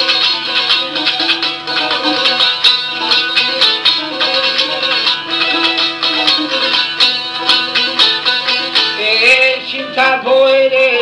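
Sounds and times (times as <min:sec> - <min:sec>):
plucked long-necked lute: 0:00.0 - 0:11.0
man singing: 0:05.5 - 0:11.0.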